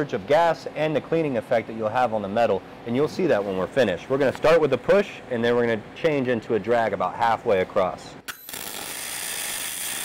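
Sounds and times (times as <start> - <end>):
welding arc hissing: 8.5 - 10.0.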